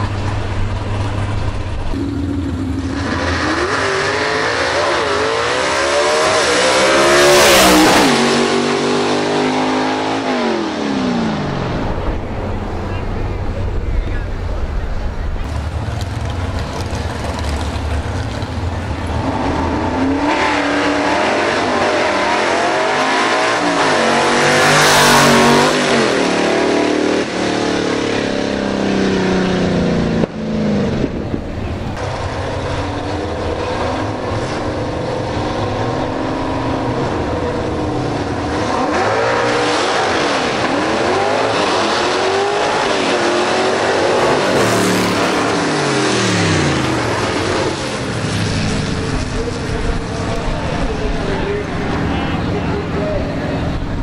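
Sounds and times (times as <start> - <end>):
engine idling rumble: 0.0 - 3.0, 11.8 - 19.9
drag car engine revving: 0.0 - 12.3, 15.4 - 54.0.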